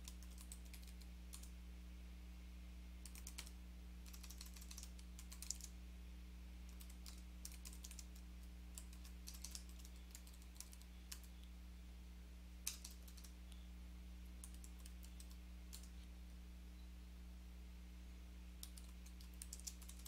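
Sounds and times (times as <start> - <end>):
computer keyboard typing: 0.0 - 1.5, 3.0 - 5.7, 6.7 - 11.4, 12.6 - 13.4, 14.4 - 16.0, 18.6 - 20.0
steady low hum: 0.0 - 20.0.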